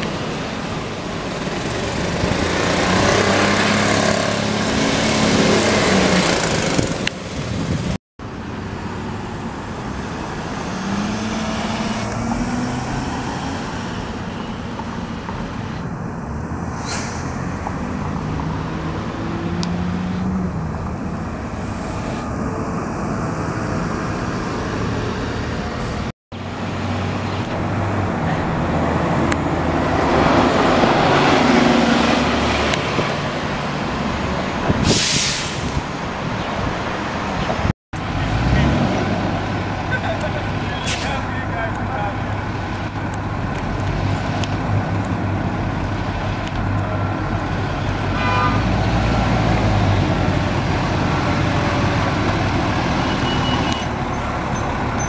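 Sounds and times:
bus diesel engines accelerating: 0.0s - 55.0s
short hiss: 16.7s - 17.4s, 34.8s - 35.7s.

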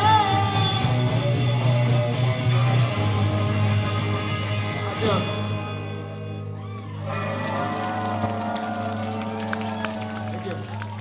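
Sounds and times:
audience cheering: 6.5s - 11.0s.

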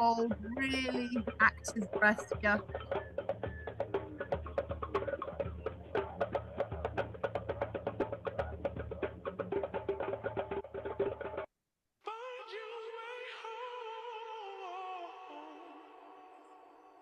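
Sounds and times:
rapid clicking percussion: 0.0s - 11.5s.

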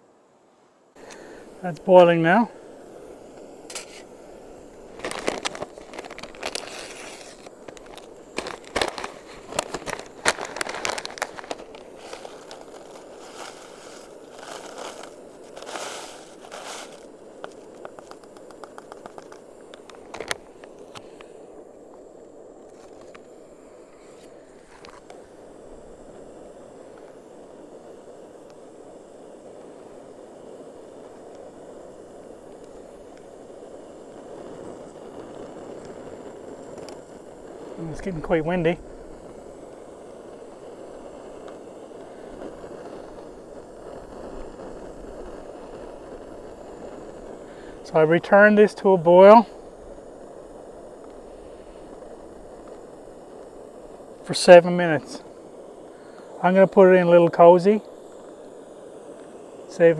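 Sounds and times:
wind: 0.0s - 59.9s
gas stove burner rushing: 0.9s - 59.9s
plastic pouch crinkling: 4.9s - 20.9s.

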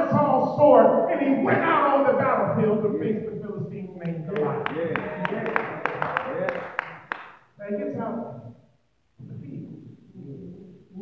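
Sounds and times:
voices: 0.0s - 6.9s
sharp hand claps: 4.0s - 7.4s.

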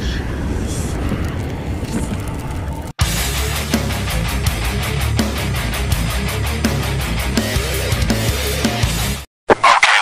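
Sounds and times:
deep rumble: 0.0s - 5.0s.

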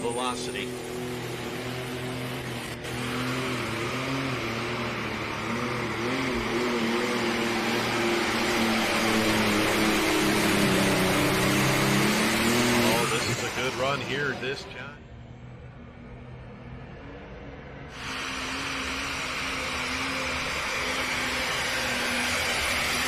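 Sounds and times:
tractor diesel engine running flat out: 0.0s - 23.0s.

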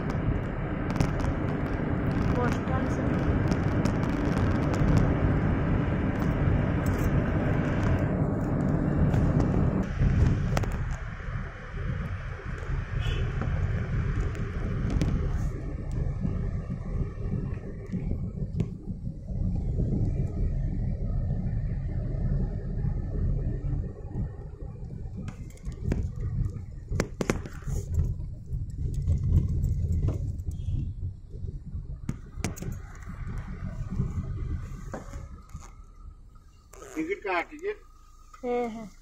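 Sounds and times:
vehicle road and wind rumble: 0.0s - 39.0s.

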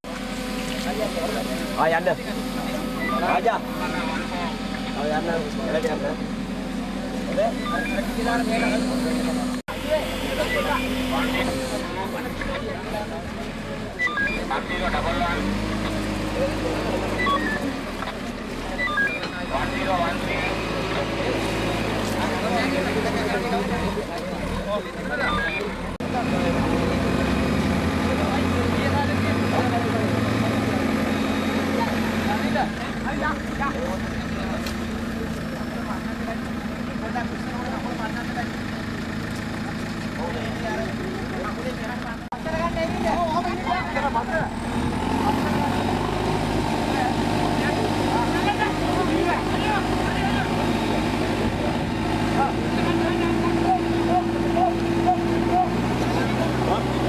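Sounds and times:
crowd talking: 0.0s - 57.0s
diesel engine running: 0.0s - 57.0s.

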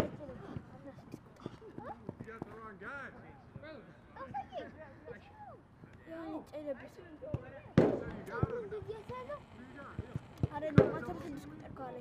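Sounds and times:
people calling and shouting: 0.0s - 12.0s.

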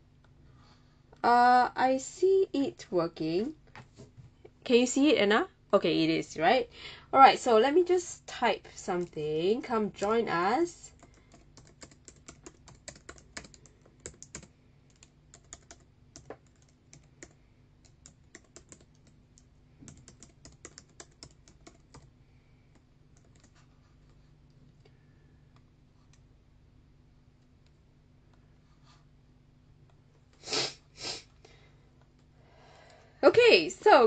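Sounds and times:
low steady hum: 0.0s - 34.0s
keyboard typing clicks: 10.9s - 22.1s, 22.7s - 23.6s.

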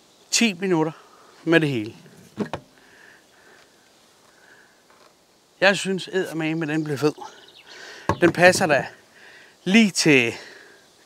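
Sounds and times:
bar stool knocking on wooden table: 2.4s - 2.7s, 8.1s - 8.6s.

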